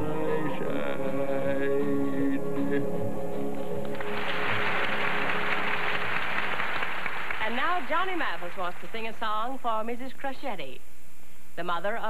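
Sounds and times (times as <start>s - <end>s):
audience applauding: 3.8s - 9.0s.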